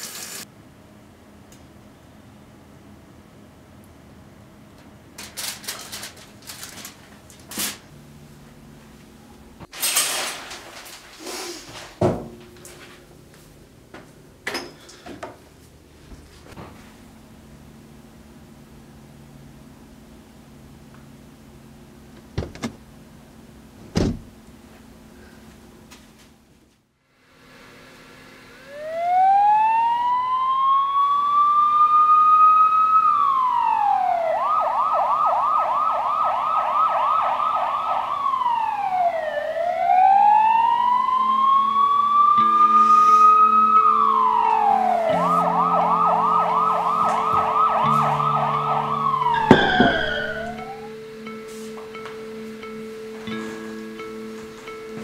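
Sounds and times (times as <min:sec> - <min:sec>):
emergency vehicle siren: 0:28.6 - 0:53.1
low sustained tones: 0:41.2 - 0:54.3.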